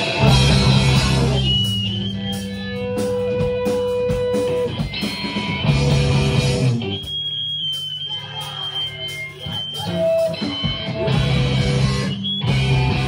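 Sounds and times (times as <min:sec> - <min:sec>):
high steady tone: 0:00.0 - 0:13.0
screamo band playing live: 0:00.0 - 0:13.0.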